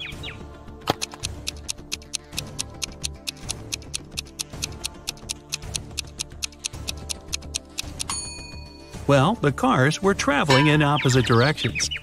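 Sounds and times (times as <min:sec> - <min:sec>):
background music: 0:00.0 - 0:12.0
stopwatch ticking: 0:01.1 - 0:08.2.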